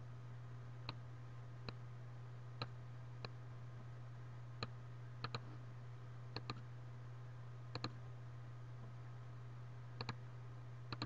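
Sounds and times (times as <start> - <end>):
low steady hum: 0.0 - 11.0
computer mouse clicking: 4.6 - 5.5, 6.4 - 6.6, 7.7 - 8.0, 10.0 - 10.2.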